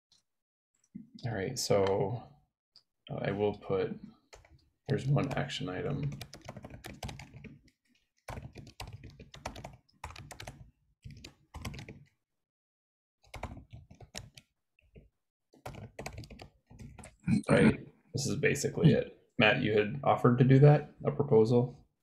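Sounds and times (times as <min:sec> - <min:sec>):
typing on computer keyboard: 0:04.3 - 0:12.1, 0:13.2 - 0:17.2.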